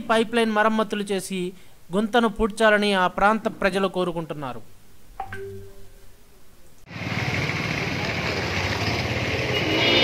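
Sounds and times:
traffic noise: 6.9s - 10.0s.

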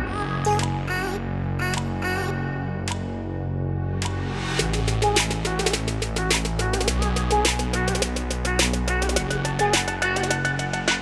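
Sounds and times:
deep bass: 0.0s - 11.0s
steady drum beat: 4.6s - 11.0s.

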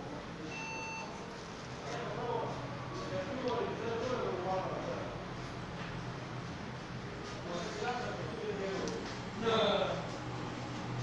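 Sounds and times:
short electronic beep: 0.5s - 1.2s.

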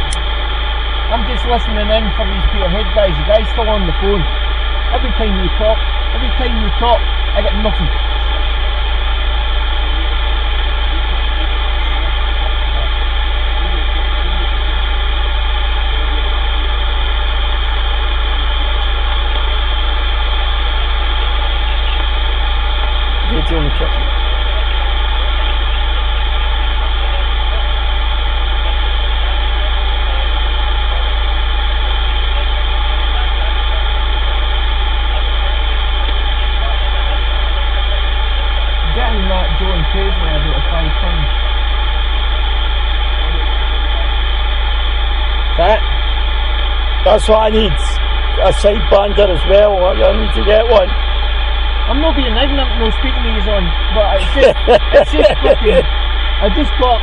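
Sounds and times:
radio static hiss: 0.0s - 46.1s, 47.0s - 51.0s, 51.8s - 57.0s
loud low hum: 0.0s - 57.0s.

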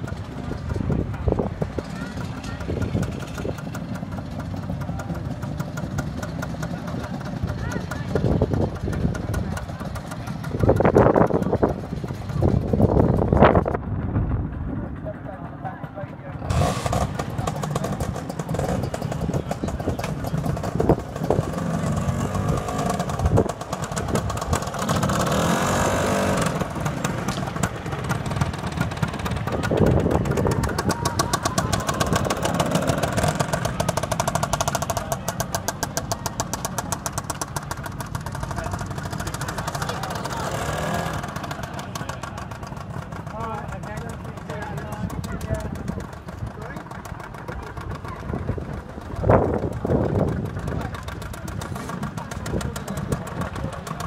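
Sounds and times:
people talking: 0.0s - 13.4s, 14.7s - 54.0s
scooter two-stroke engine passing: 0.0s - 54.0s.

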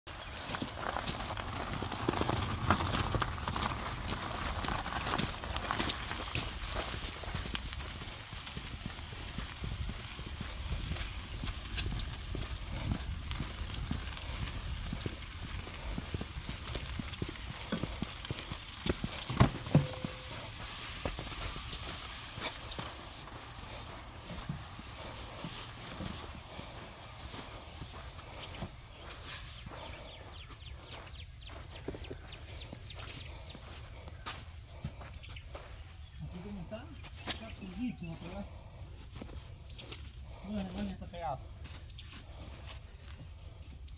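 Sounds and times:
wheelbarrow rolling over gravel: 0.1s - 35.6s
footsteps on gravel: 0.1s - 43.9s.

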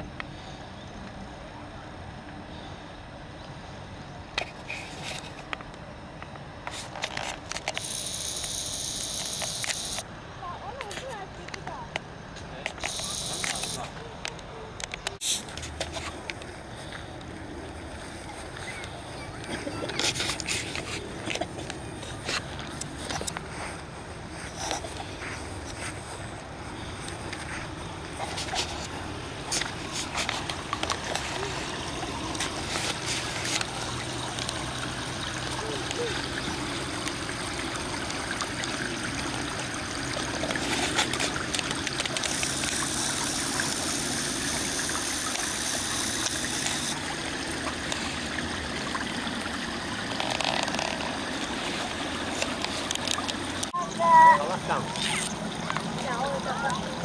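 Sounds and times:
water trickling in stream: 0.0s - 57.0s
distant people talking: 10.4s - 15.2s, 18.1s - 22.8s.

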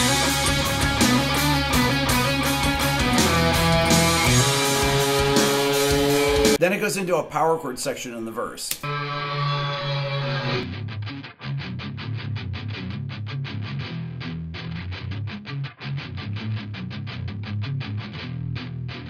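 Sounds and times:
distorted electric guitar riff: 0.0s - 6.6s, 8.8s - 19.0s.

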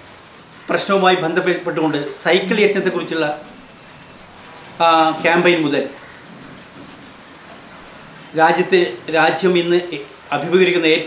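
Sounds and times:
steady background hiss: 0.0s - 11.0s
man speaking: 0.7s - 3.5s, 4.1s - 6.0s, 8.3s - 11.0s.

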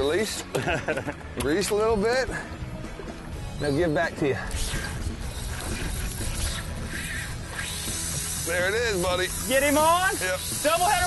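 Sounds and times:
wind: 0.0s - 11.0s
fishing reel drag ratcheting: 4.4s - 11.0s.

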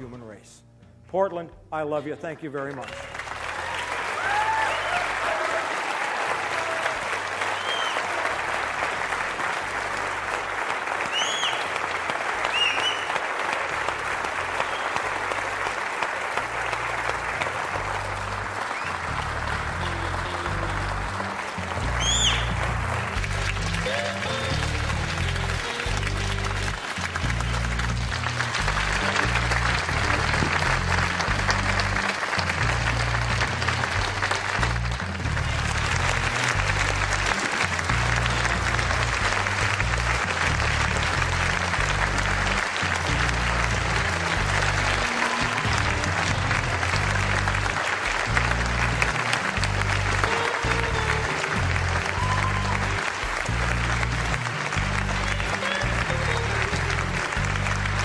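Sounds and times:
audience applauding and cheering: 2.5s - 58.0s
sharp whistles: 7.5s - 8.0s, 11.1s - 11.7s, 12.5s - 13.2s, 22.0s - 22.5s
music with rhythmic bass line: 16.7s - 58.0s.

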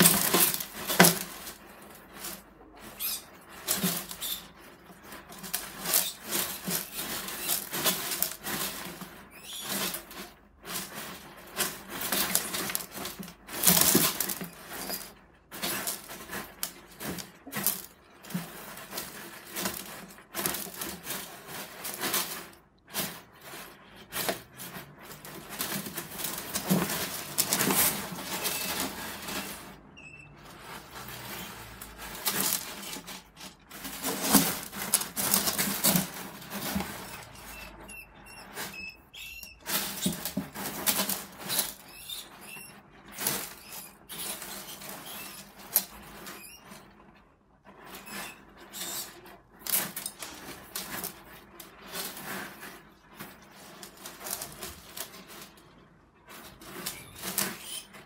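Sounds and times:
gravel rattling and scraping: 0.0s - 29.8s, 30.5s - 58.0s.

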